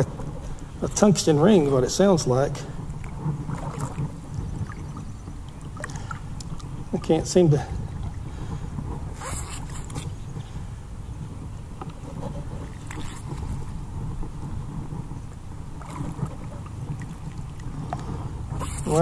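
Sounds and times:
steady low rumble: 0.0s - 19.0s
water sloshing: 0.5s - 10.3s, 11.8s - 13.8s, 15.2s - 19.0s.

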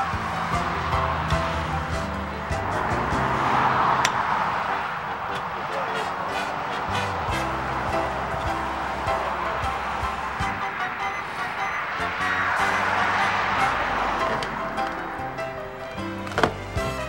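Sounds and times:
background music sustained notes: 0.0s - 17.0s.

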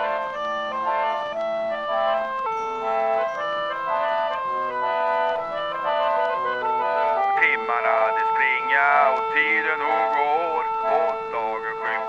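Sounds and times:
pump organ playing chords: 0.0s - 12.0s.

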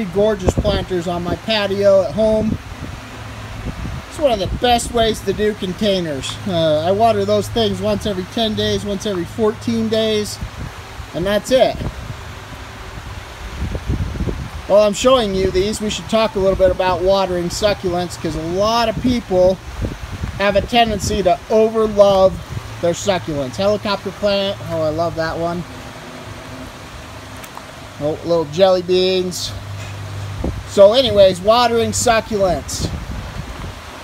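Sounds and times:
wind buffeting microphone: 0.0s - 28.0s, 28.9s - 34.0s.

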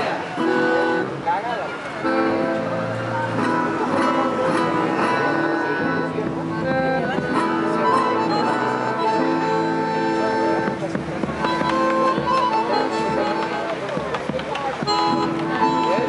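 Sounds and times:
folk music ensemble: 0.0s - 16.0s
bass drum: 10.4s - 16.0s.

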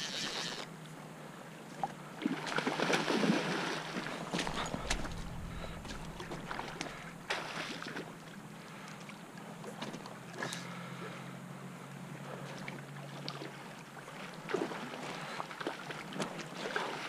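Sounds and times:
creek water flowing: 0.0s - 17.0s
wind noise on microphone: 4.3s - 7.3s.

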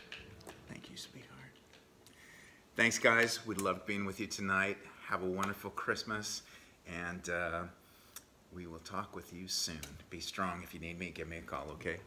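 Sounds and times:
faint whispering: 0.7s - 1.6s.

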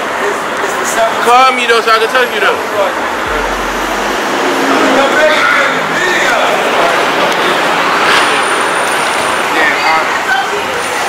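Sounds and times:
thin high whine: 3.3s - 6.9s.

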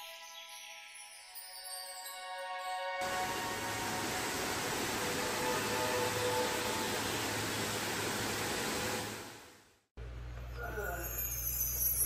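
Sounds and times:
waterfall rushing water: 3.0s - 9.4s.

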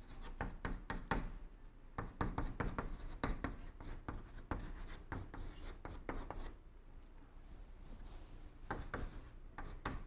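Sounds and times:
chalk writing on blackboard: 0.0s - 1.3s, 2.0s - 6.6s, 8.7s - 10.0s.

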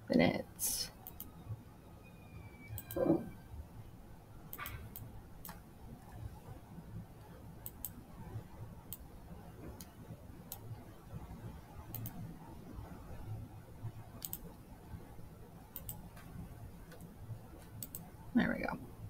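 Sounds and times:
computer mouse clicking: 1.0s - 1.4s, 2.7s - 3.2s, 4.5s - 5.6s, 7.6s - 8.0s, 8.9s - 9.1s, 9.7s - 10.8s, 11.9s - 12.3s, 14.2s - 14.6s, 15.7s - 18.1s.

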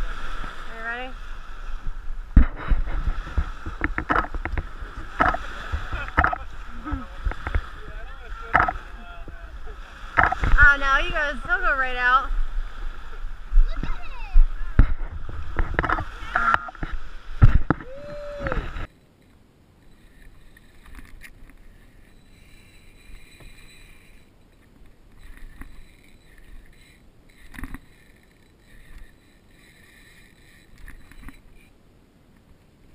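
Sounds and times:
wind buffeting microphone: 0.0s - 18.9s
small waves washing in: 0.0s - 32.3s
voices: 4.1s - 12.4s.

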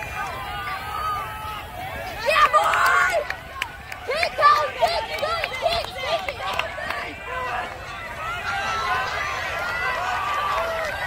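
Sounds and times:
distant crowd cheering: 0.0s - 11.0s.

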